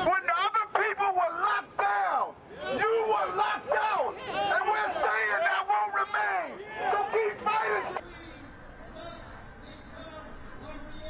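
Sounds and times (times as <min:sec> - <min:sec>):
man speaking through megaphone: 0:00.0 - 0:11.0.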